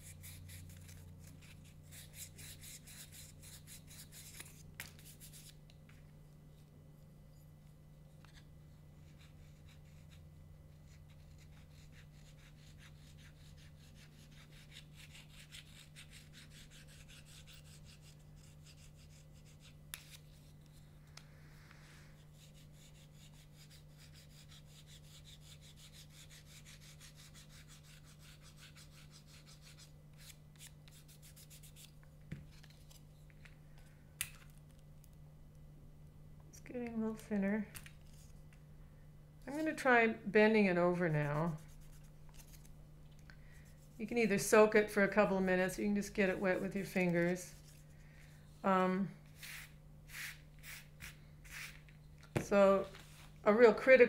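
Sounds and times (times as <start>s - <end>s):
sandpaper rubbing on cane: 22.2s - 31.9s, 49.4s - 51.8s.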